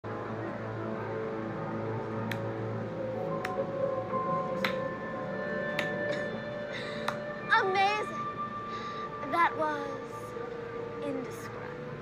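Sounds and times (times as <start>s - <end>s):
suspenseful drone music: 0.1s - 12.0s.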